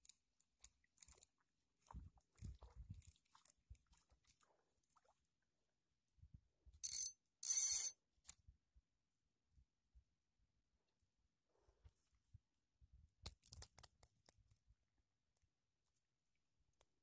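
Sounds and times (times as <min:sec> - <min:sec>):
fishing reel clicking: 0:06.8 - 0:08.0.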